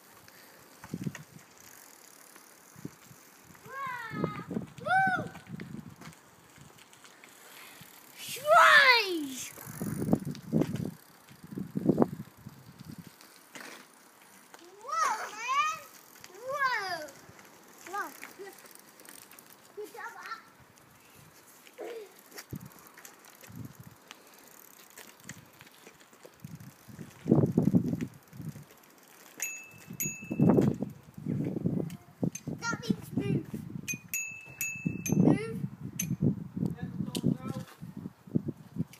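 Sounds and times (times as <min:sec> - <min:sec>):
young child crying out: 0:03.7 - 0:05.4, 0:08.2 - 0:09.4
bicycle bell ringing: 0:29.4 - 0:30.9, 0:33.8 - 0:36.2.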